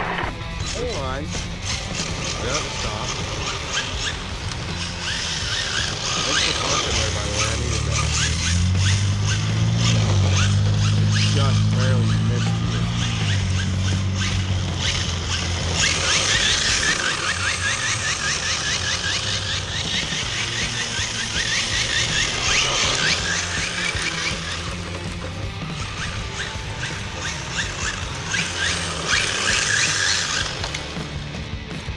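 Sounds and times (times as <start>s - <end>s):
tyres squealing on asphalt: 0.0s - 31.0s.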